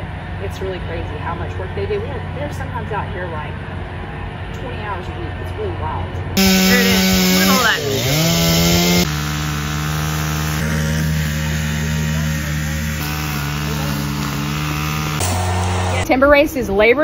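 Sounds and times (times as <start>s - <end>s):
chainsaw cutting a log: 6.4s - 16.0s.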